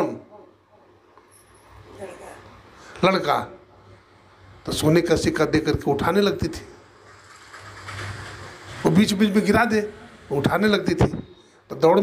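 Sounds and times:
man speaking through microphone: 8.8 - 12.0.

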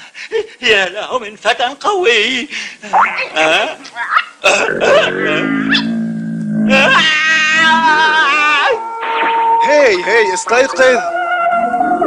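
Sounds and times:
cartoon dog barking: 4.9 - 5.9.

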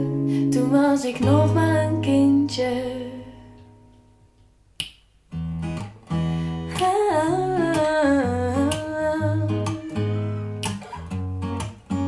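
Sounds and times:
sharp click: 4.8 - 5.1.

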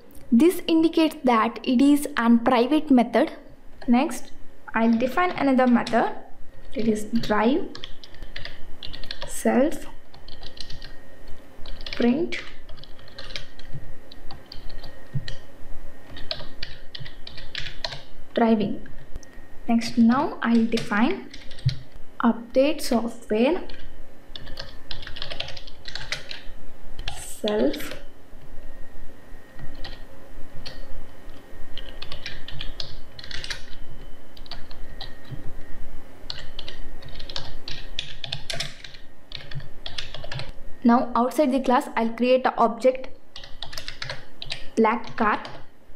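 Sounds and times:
typing on computer keyboard: 7.2 - 9.3, 10.1 - 11.0, 11.6 - 15.4, 16.1 - 18.1, 20.5 - 21.8, 23.7 - 28.0, 29.6 - 30.0, 30.6 - 33.8, 34.4 - 35.4, 36.3 - 40.5, 43.4 - 45.6.

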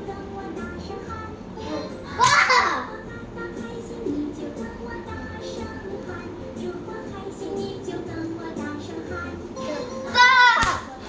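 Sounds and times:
cartoon music from tv: 0.0 - 11.0
child shouting: 2.2 - 2.8, 10.1 - 10.8.

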